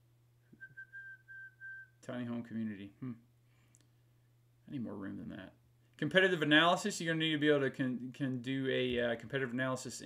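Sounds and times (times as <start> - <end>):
man whistling softly: 0.5 - 2.0.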